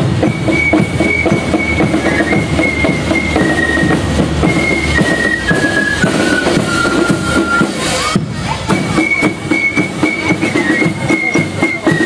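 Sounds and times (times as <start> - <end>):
snare drums beating: 0.0 - 12.0.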